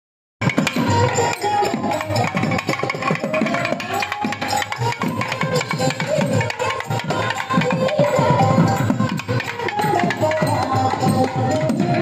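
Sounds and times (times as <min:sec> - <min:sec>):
barrel drums in fast rhythm: 0:00.4 - 0:12.0.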